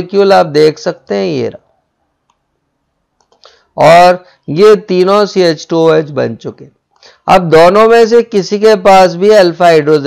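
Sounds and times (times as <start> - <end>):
computer mouse clicks: 2.2 - 2.4, 3.2 - 3.5.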